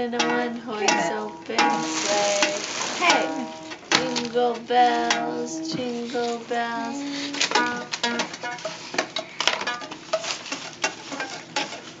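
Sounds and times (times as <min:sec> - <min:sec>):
toys clattering: 0:00.2 - 0:12.0
gift wrapping rustling: 0:00.8 - 0:04.8, 0:05.5 - 0:12.0.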